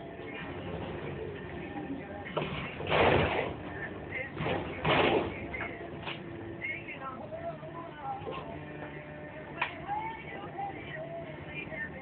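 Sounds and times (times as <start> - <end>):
crane machinery hum: 0.0 - 12.0.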